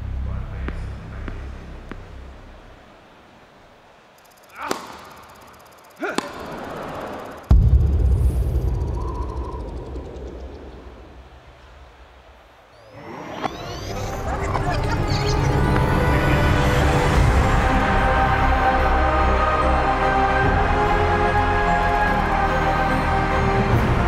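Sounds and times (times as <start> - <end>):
deep boom: 7.5 - 11.0
music: 13.4 - 24.0.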